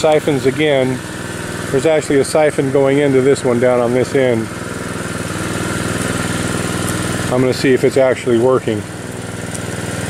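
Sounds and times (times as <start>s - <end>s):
small engine running: 0.0s - 10.0s.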